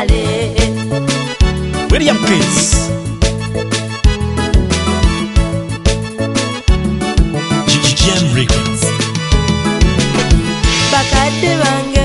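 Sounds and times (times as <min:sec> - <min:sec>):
band music with drum and bass: 0:01.7 - 0:05.6, 0:06.3 - 0:12.0
gliding melodic line: 0:01.9 - 0:03.4.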